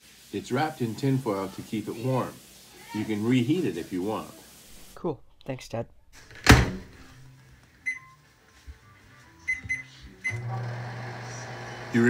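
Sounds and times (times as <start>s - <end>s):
keypad beeps: 9.5s - 10.4s
microwave oven humming: 9.5s - 12.0s.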